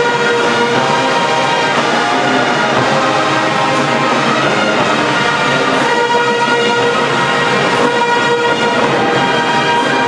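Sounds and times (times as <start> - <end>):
brass sustained chord: 0.0 - 10.0
orchestral music: 0.0 - 10.0.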